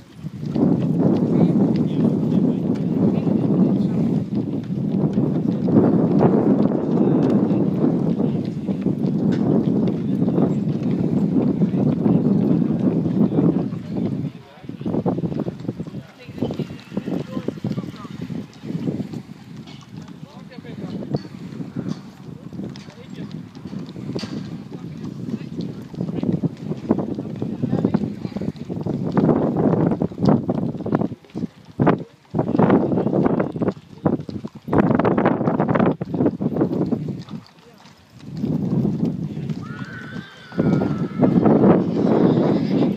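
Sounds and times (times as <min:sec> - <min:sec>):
muffled hoofbeats on sand: 0:00.0 - 0:42.9
wind on microphone: 0:00.0 - 0:42.9.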